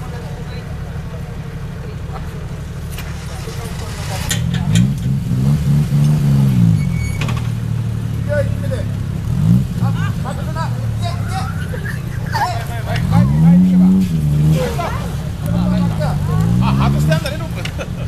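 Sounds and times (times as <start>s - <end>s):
engine idling and revving: 0.0s - 18.0s
voices: 0.0s - 18.0s.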